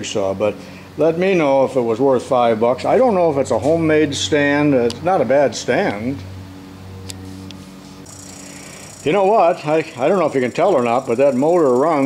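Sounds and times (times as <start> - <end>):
faint high whine: 6.8 - 12.0
electric motor humming: 7.1 - 12.0.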